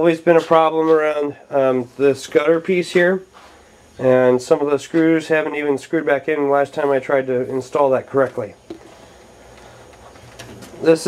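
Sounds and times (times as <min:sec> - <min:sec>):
man speaking: 0:00.0 - 0:03.3, 0:04.0 - 0:08.6, 0:10.8 - 0:11.0.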